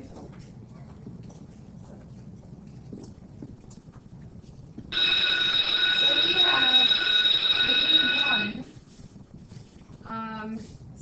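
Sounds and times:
loud alarm-like ringing tone: 4.9 - 8.8
faint voices: 5.0 - 8.7.

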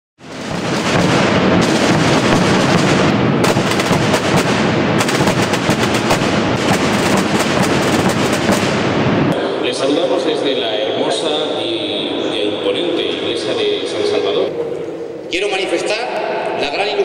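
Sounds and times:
snare drums rolling: 0.2 - 9.4.

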